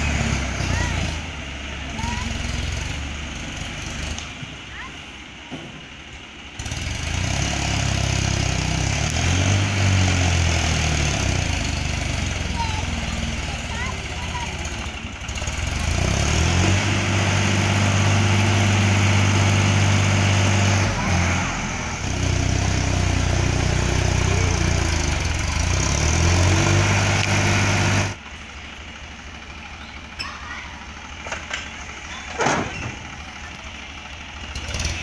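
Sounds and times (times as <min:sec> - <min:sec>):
tractor engine revving under load: 0:00.0 - 0:04.7, 0:06.3 - 0:35.0.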